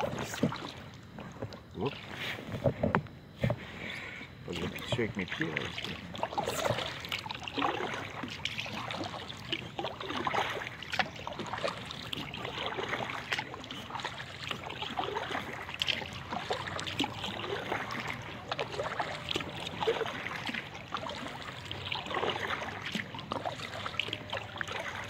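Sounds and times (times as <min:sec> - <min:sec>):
kayak paddle splashing water: 0:00.0 - 0:02.8, 0:04.5 - 0:25.0.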